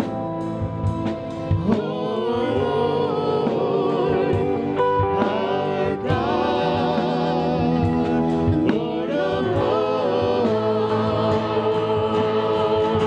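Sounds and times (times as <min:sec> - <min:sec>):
acoustic guitar and band: 0:00.0 - 0:13.0
voices singing worship song: 0:00.0 - 0:13.0.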